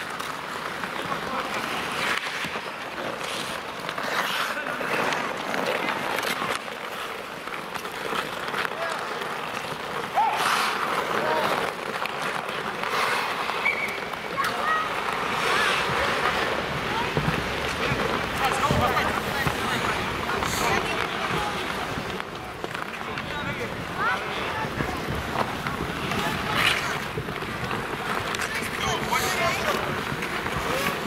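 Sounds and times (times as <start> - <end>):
hockey sticks and puck clacking: 0.0 - 31.0
skates scraping on ice: 0.0 - 31.0.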